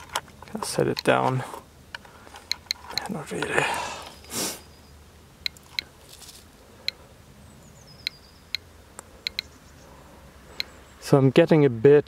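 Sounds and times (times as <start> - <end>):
short rustle: 6.0 - 6.6.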